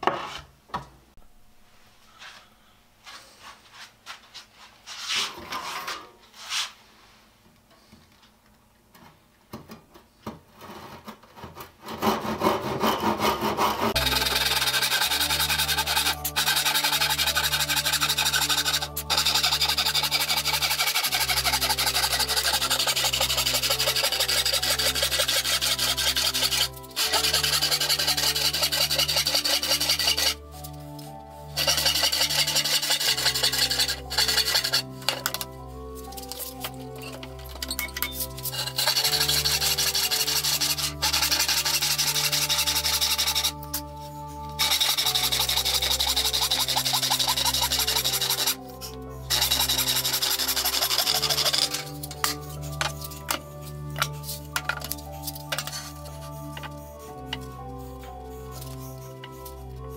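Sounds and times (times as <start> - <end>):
handsaw sawing wood: 11.8 - 30.6, 31.5 - 35.4, 38.2 - 59.9
background music with bass: 14.0 - 59.9.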